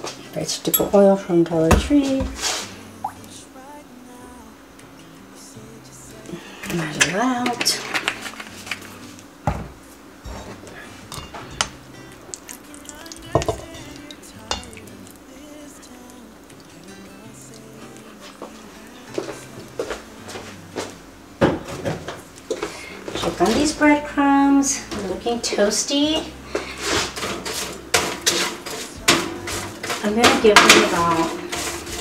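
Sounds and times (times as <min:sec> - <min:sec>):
oil pouring: 0:12.3 - 0:15.2
spatula knocking steel bowl: 0:27.9 - 0:31.8.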